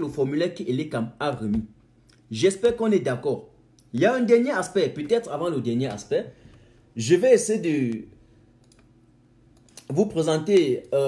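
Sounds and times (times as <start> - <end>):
man speaking: 0.0 - 6.4, 7.0 - 8.2, 9.8 - 11.0.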